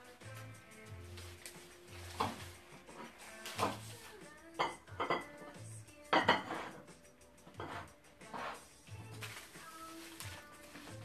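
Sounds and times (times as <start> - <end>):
background music with beat: 0.0 - 11.0
plates and cutlery clattering: 4.6 - 5.5, 6.1 - 8.6.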